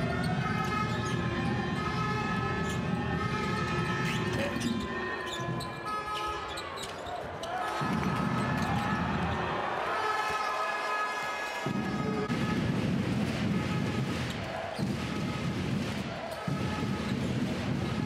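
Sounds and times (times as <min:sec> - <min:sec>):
arena crowd noise: 0:00.0 - 0:18.0.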